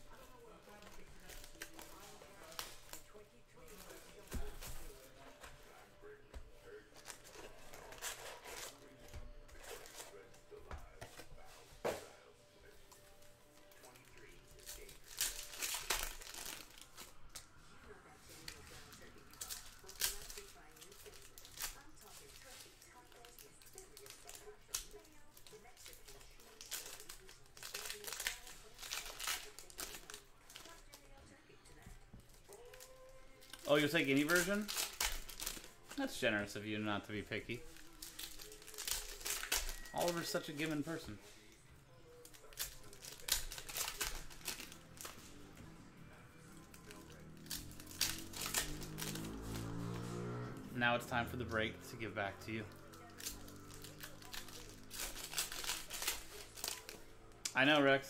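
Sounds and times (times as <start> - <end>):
foil packs crinkling: 0.1 - 5.4, 6.8 - 11.3, 13.4 - 17.4, 18.3 - 31.1, 32.2 - 41.3, 42.2 - 45.4, 46.6 - 50.0, 51.1 - 57.8
plastic shrink-wrap tearing: 0.1 - 5.5, 6.8 - 10.3, 13.6 - 17.6, 18.3 - 31.1, 32.2 - 41.2, 42.1 - 45.6, 46.4 - 57.7.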